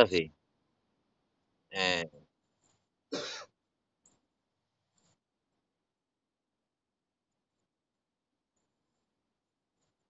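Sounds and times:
person coughing: 3.1 - 3.5.

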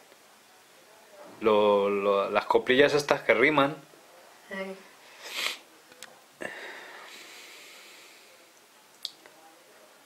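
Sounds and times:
person sniffing: 5.2 - 5.6.

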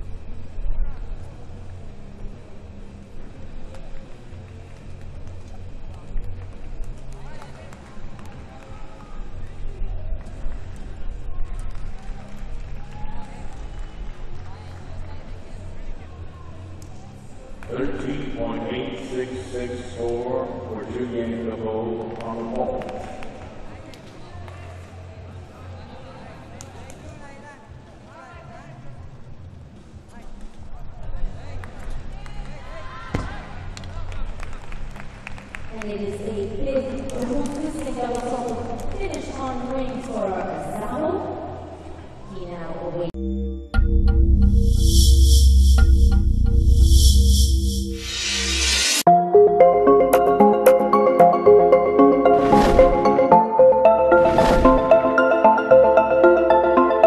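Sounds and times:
low hum: 43.2 - 49.1
background music: 43.2 - 57.0.

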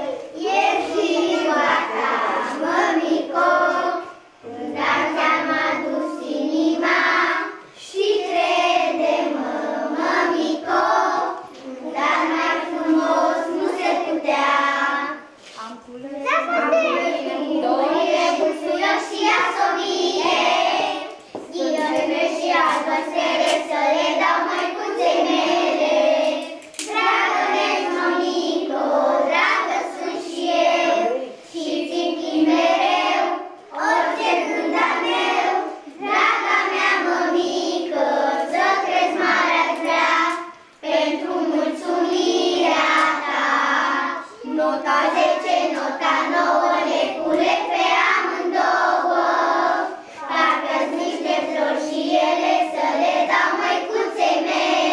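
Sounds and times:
children singing: 0.0 - 15.4, 16.4 - 54.9.

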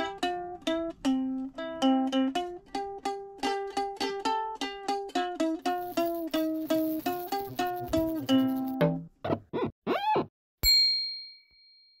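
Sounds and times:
bell-like ding: 10.6 - 12.0.

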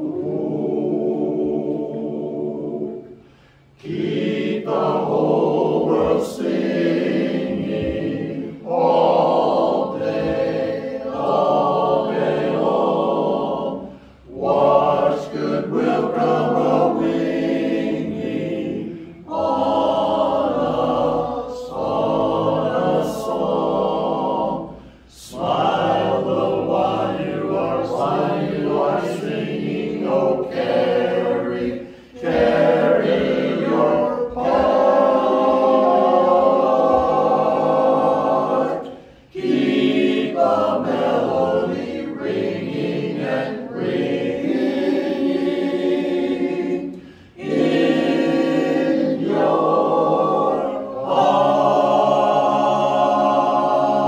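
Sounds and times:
men's chorus singing a cappella: 0.0 - 54.0.

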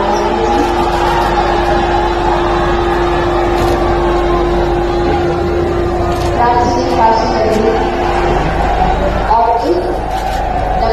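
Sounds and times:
boat engine droning: 0.0 - 10.9.

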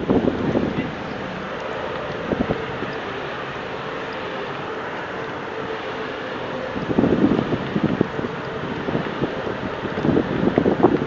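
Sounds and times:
faint steady hum: 0.0 - 11.0
wind buffeting microphone: 0.0 - 11.0.

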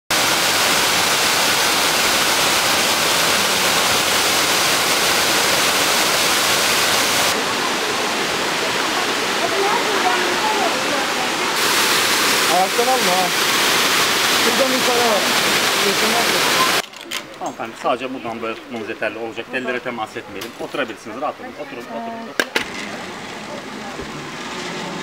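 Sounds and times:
waterfall rushing: 0.1 - 16.8
faint voices: 15.8 - 25.0.

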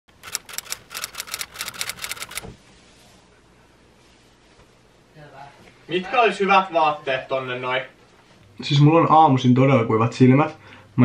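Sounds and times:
sharp bright clicks: 0.2 - 2.4.

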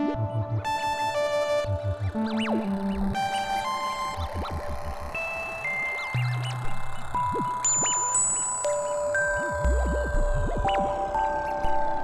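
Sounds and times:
bell-like synthesizer tones: 1.7 - 12.0.

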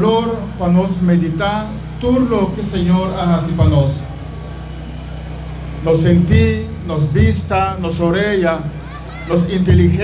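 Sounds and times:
faint outdoor background noise: 0.0 - 10.0
low mechanical hum: 0.0 - 10.0.

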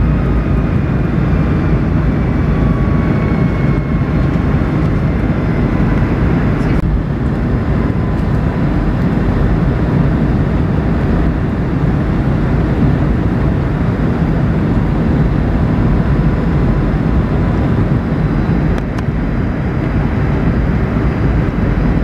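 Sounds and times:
faint high whine: 0.0 - 9.0
aircraft cabin engine rumble: 0.0 - 22.0.

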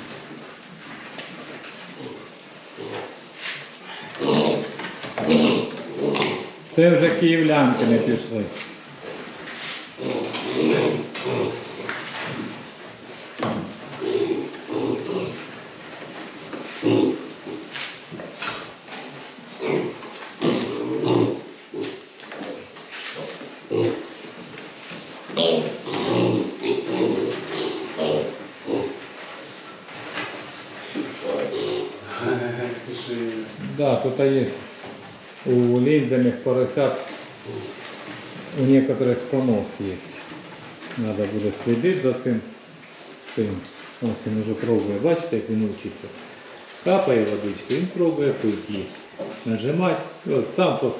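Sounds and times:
piglets grunting: 3.8 - 6.7, 10.0 - 12.0, 14.0 - 15.5, 16.7 - 17.8, 19.5 - 24.2, 25.3 - 29.0, 30.8 - 33.1.

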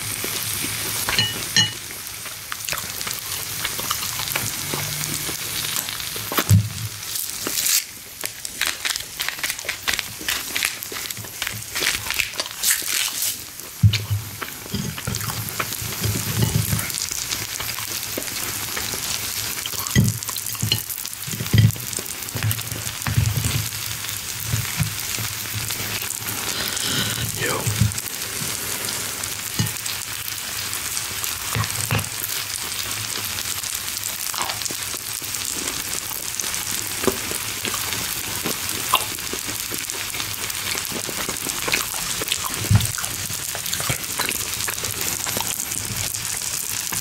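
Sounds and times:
food sizzling on a grill: 0.0 - 47.0.

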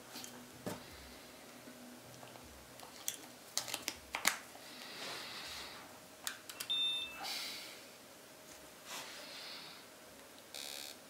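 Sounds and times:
high electronic tone: 6.6 - 7.2.

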